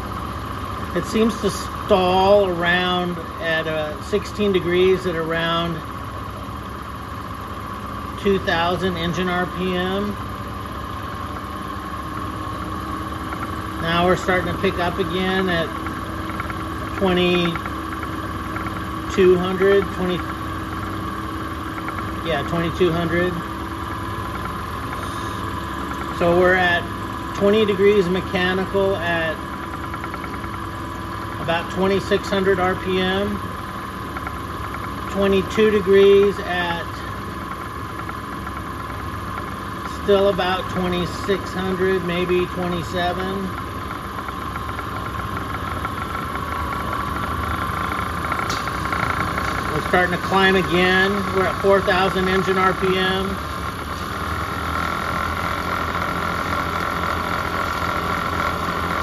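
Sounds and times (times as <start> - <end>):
distributor test machine humming: 0.0 - 59.0
high whine: 0.0 - 59.0.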